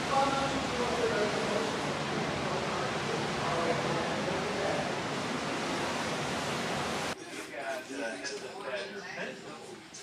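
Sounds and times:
rushing water: 0:00.0 - 0:07.6.

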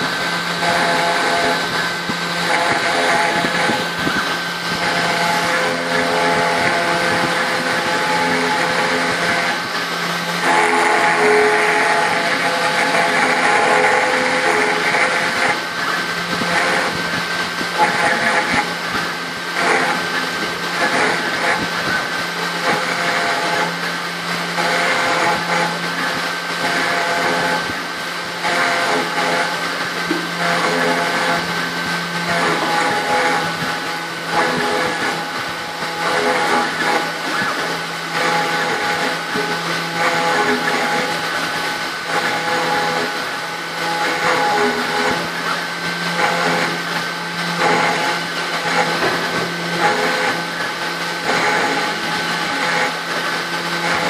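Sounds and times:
router spindle running: 0:00.0 - 0:54.0.

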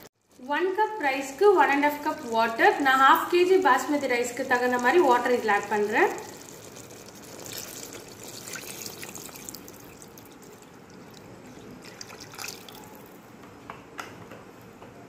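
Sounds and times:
water pouring into a pot: 0:01.4 - 0:13.2.

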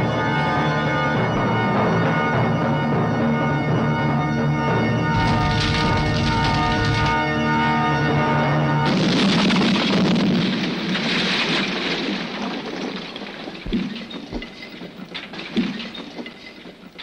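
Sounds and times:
explosion rushing rumble: 0:05.2 - 0:07.2.

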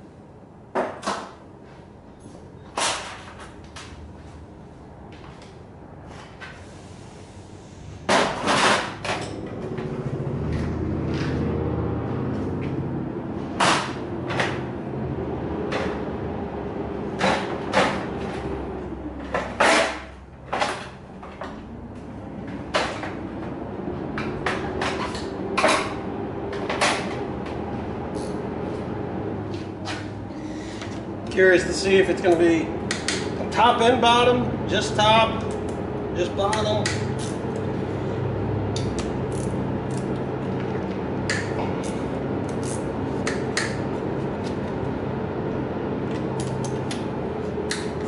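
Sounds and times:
steady mechanical hum: 0:00.0 - 0:48.0
tools knocking and clanking: 0:08.1 - 0:11.4.

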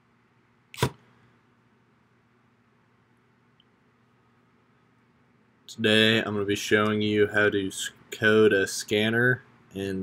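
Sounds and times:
sharp click: 0:00.7 - 0:01.0.

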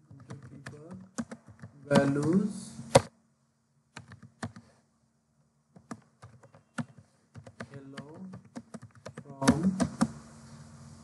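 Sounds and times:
keyboard key clicks: 0:00.1 - 0:03.1, 0:05.8 - 0:10.1.

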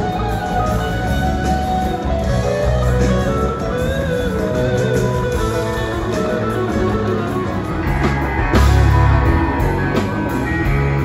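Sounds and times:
live band playing: 0:00.0 - 0:11.0
wavering guitar melody: 0:00.0 - 0:11.0.

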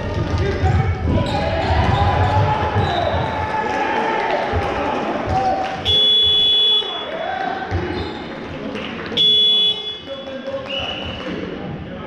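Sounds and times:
referee's whistle blasts: 0:05.8 - 0:07.1, 0:09.2 - 0:11.2.

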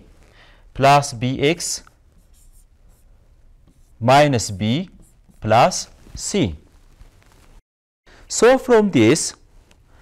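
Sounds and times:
stylus scratching on screen: 0:01.6 - 0:07.6.

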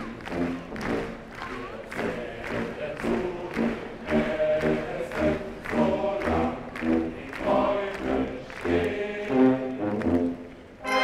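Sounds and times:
military band playing: 0:00.1 - 0:11.0
voices singing in chorus: 0:01.4 - 0:11.0.

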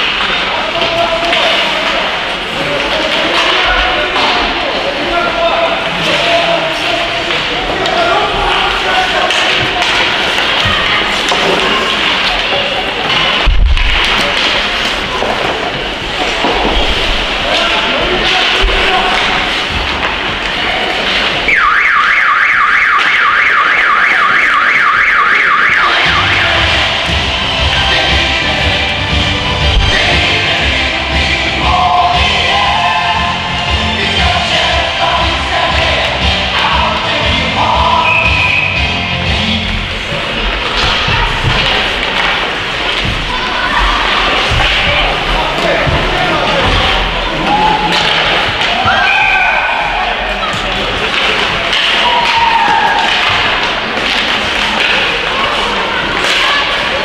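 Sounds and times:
music over loudspeakers: 0:25.6 - 0:39.9.

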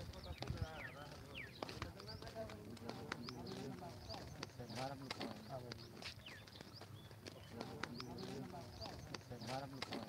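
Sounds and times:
men talking: 0:00.0 - 0:10.0
sandal footsteps on pavement: 0:00.0 - 0:10.0.

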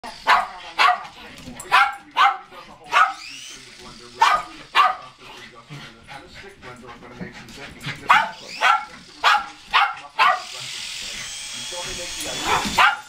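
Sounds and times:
dog barking sharply: 0:00.3 - 0:01.1, 0:01.7 - 0:03.3, 0:04.2 - 0:05.0, 0:08.1 - 0:10.5, 0:12.4 - 0:13.0.

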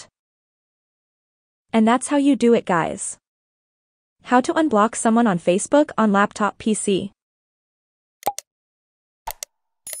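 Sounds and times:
mouse-click pops: 0:08.2 - 0:08.5, 0:09.3 - 0:10.0.

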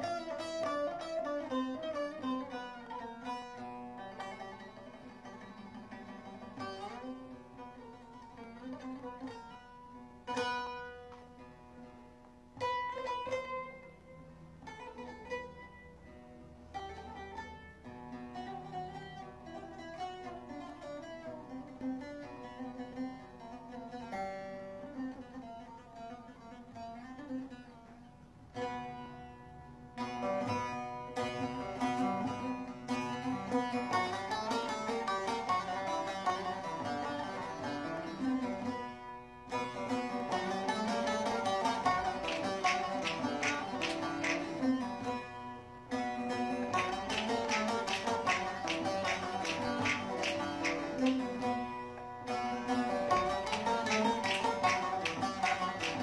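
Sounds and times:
plucked lute folk melody: 0:00.0 - 0:56.0.

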